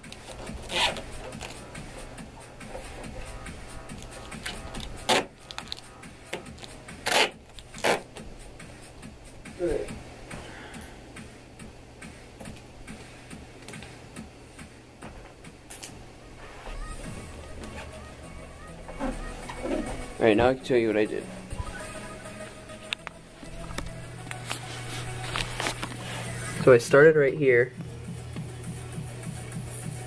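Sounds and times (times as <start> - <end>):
tape tearing off roll: 0.0 - 1.6, 3.9 - 8.2, 23.7 - 26.1.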